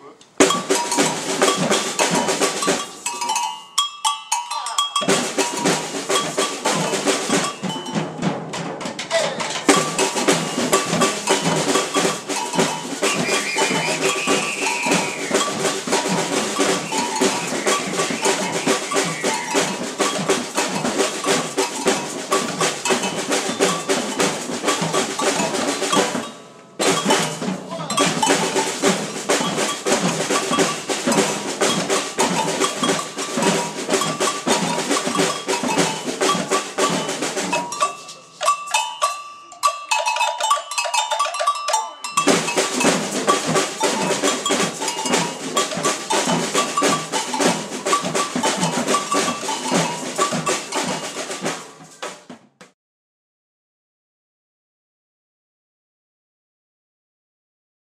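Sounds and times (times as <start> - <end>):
snare and field drums playing: 0.3 - 3.6, 5.0 - 39.1, 39.7 - 52.8.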